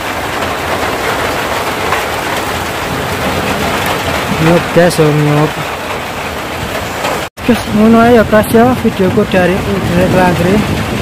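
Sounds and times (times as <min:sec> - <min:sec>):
rain falling on pond water: 0:00.0 - 0:11.0.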